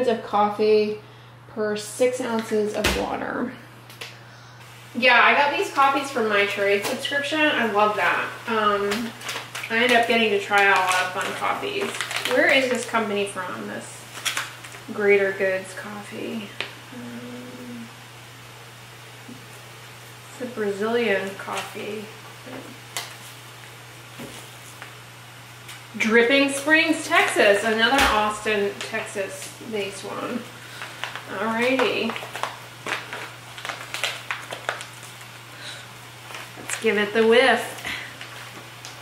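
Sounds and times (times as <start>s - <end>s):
steady low hum: 0.0s - 39.0s
coffee bag crinkling: 8.7s - 15.0s, 22.8s - 25.0s, 30.6s - 39.0s
woman humming: 16.8s - 18.2s.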